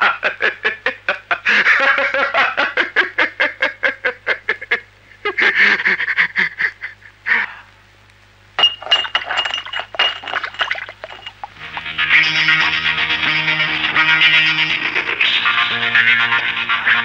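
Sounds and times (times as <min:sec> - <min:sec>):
man laughing loudly: 0:00.0 - 0:07.4
glass bottle crashing on ground: 0:08.6 - 0:11.6.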